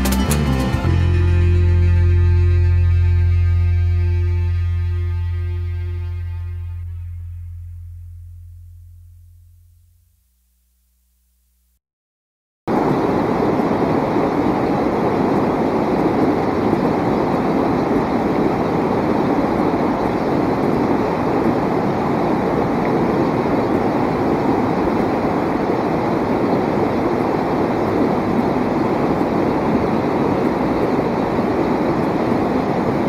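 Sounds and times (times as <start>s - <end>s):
stream rushing over boulders: 12.7s - 33.0s.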